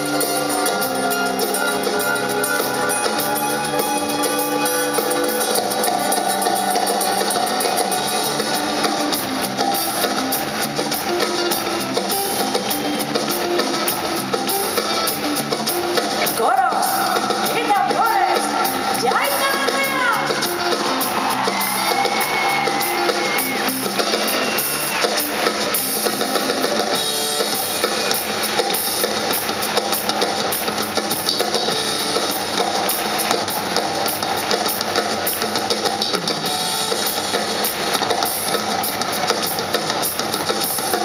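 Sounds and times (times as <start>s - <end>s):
drum kit with cymbals: 0.0s - 41.0s
live band playing: 0.0s - 41.0s.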